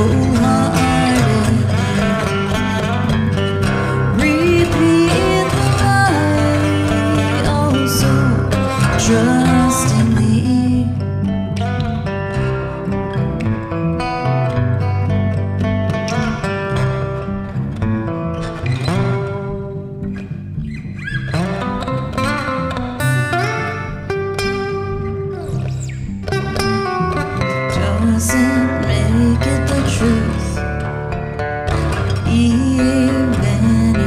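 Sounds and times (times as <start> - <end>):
bass guitar line: 0.0 - 34.0
picked acoustic guitar notes: 0.0 - 34.0.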